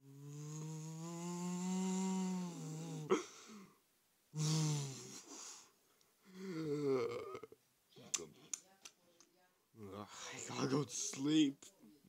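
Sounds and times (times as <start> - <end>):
cartoon snore: 0.0 - 3.3, 4.4 - 5.2.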